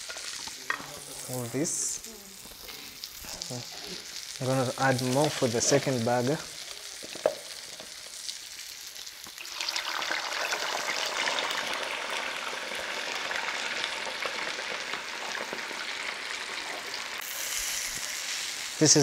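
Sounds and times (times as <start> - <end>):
potatoes deep-frying in oil: 0.0 - 19.0.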